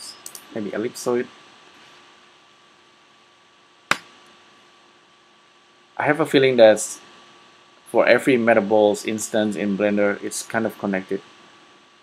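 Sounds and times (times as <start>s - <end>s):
steady low hum: 0.0s - 12.0s
sharp click: 3.9s - 4.1s.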